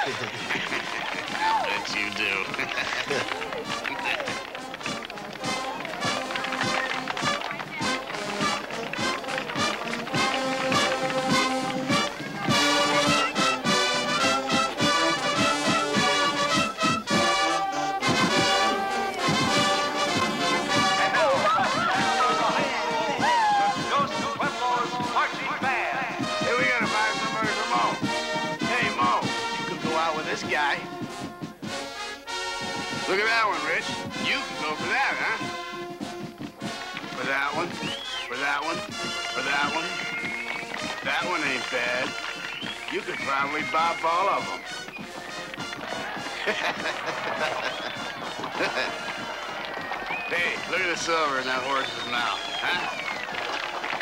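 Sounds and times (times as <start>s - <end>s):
brass horns: 0.0s - 54.0s
snare and tenor drums: 0.0s - 54.0s.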